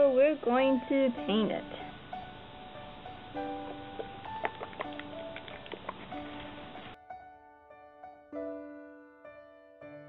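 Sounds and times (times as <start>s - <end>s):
soft instrumental music: 0.0s - 10.0s.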